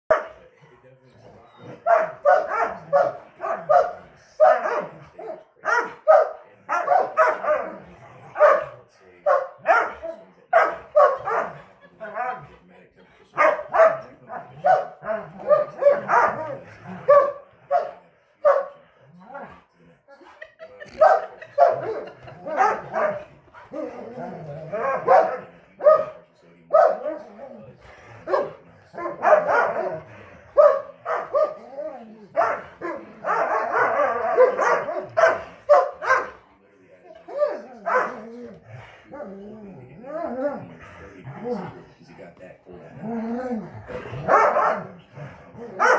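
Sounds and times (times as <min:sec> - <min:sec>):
dogs barking in play: 0:00.1 - 0:00.5, 0:01.2 - 0:12.4, 0:13.3 - 0:19.7, 0:20.4 - 0:36.4, 0:37.1 - 0:41.8, 0:42.9 - 0:45.9.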